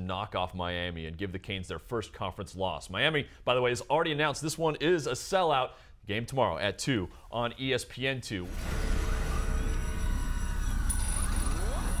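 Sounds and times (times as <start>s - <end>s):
rising synth sweep: 8.5s - 12.0s
thin high tone: 8.5s - 12.0s.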